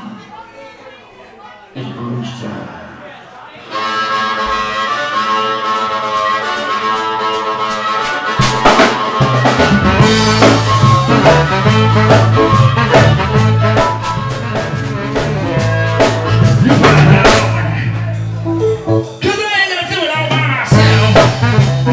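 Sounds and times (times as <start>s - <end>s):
drums: 4.3s - 21.9s
bass guitar: 8.4s - 19.3s, 20.2s - 21.9s
sustained guitar chords: 9.4s - 19.2s.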